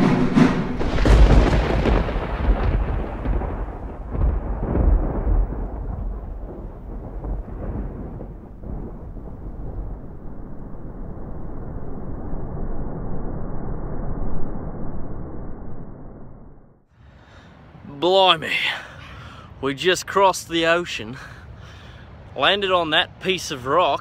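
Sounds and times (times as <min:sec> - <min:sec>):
deep muffled rumbling: 0:00.0 - 0:16.8.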